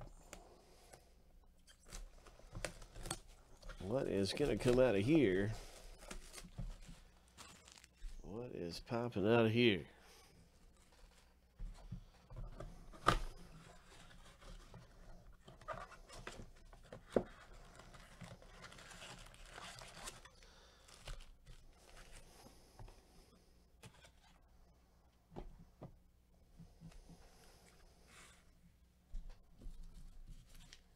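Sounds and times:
rustling and scraping of cards: 0.0 - 8.3, 10.1 - 23.2, 23.8 - 24.4, 26.6 - 28.6, 29.3 - 30.9.

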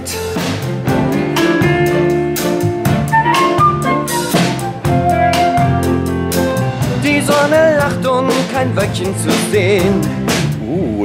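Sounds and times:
electric guitar: 0.0 - 8.5
drum kit: 0.0 - 11.0
electric bass: 0.0 - 11.0
keyboards: 0.0 - 11.0.

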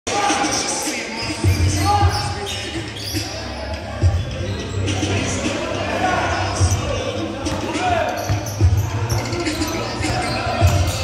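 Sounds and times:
players' voices: 0.1 - 11.0.

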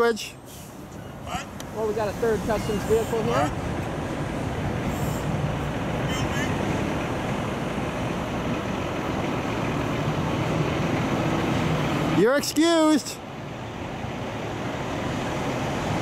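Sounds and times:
vehicle engine running: 0.8 - 12.3.

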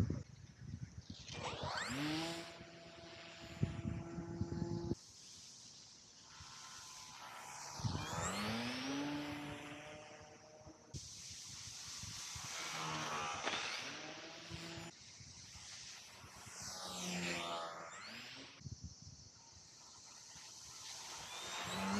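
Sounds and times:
model plane propeller buzzing: 1.3 - 5.0, 6.2 - 10.8, 12.4 - 14.9, 20.8 - 21.9.

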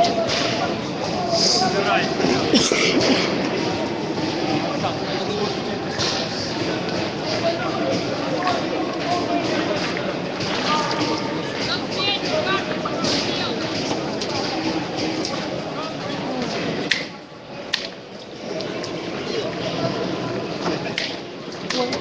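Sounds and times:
crowd babble: 0.0 - 22.0.

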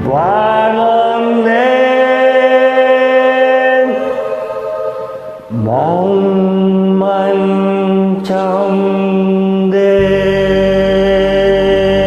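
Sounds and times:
man singing sustained note: 0.0 - 12.0.

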